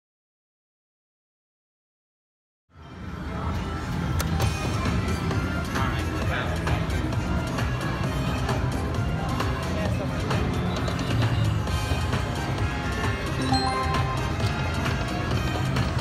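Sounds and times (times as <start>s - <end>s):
slot machine music: 13.4s - 15.3s.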